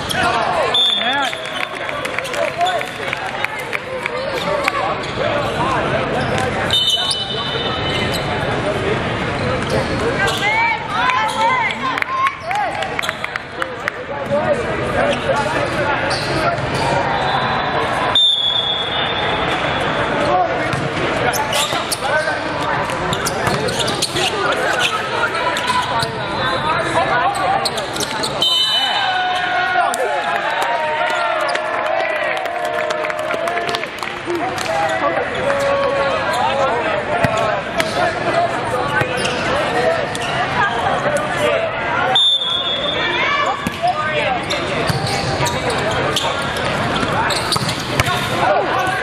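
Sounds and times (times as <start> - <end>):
referee's whistle blasts: 0.7 - 1.8, 6.7 - 8.0, 17.2 - 19.4, 28.3 - 29.2, 42.1 - 43.2
babble of voices: 19.1 - 28.4, 31.2 - 49.0.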